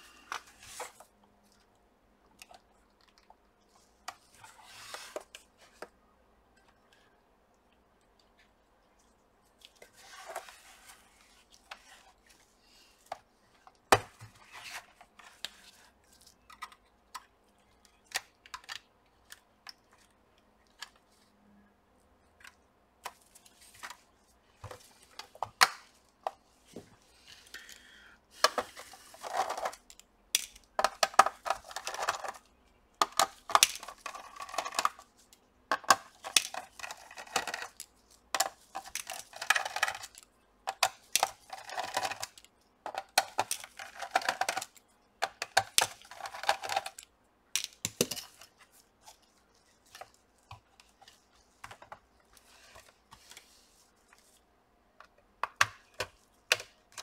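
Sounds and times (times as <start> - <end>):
plastic laptop parts clicking: 16.2 - 20.1, 29.3 - 35.0, 35.7 - 48.5.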